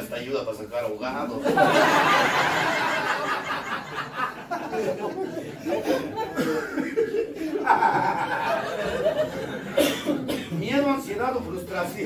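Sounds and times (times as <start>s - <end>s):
men chuckling and laughing: 1.4s - 10.6s.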